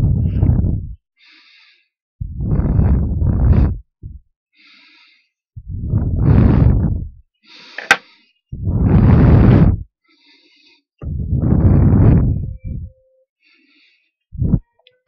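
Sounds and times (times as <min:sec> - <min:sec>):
heavy breathing into microphone: 0:01.2 - 0:03.8, 0:04.6 - 0:06.8, 0:07.4 - 0:12.4, 0:13.4 - 0:14.1
sharp click: 0:07.8 - 0:08.0.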